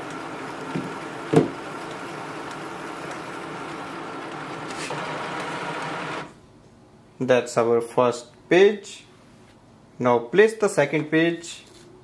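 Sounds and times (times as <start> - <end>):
printer sheet feed running: 0.0 - 6.4.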